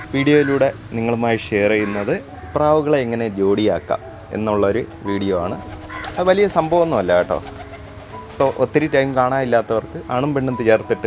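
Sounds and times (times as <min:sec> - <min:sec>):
pigeons cooing: 0:00.0 - 0:00.8, 0:05.4 - 0:08.6
background music: 0:00.0 - 0:11.0.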